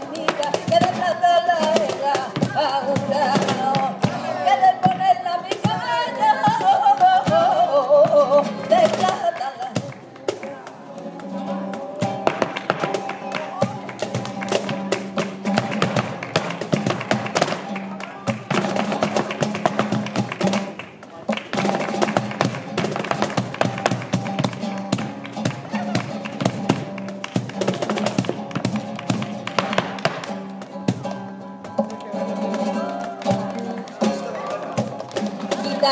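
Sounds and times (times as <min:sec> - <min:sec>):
cajon drum: 0:00.0 - 0:35.9
flamenco guitar: 0:00.0 - 0:35.9
handclaps: 0:00.2 - 0:02.0, 0:08.8 - 0:35.8
dancer footwork on wooden board: 0:09.8 - 0:32.0.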